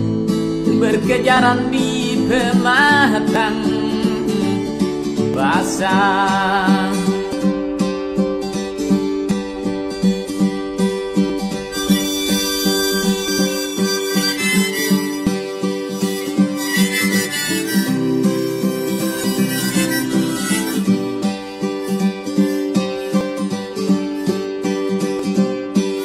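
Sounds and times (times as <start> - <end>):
picked acoustic guitar: 0.0 - 26.0
harmonica melody: 8.8 - 26.0.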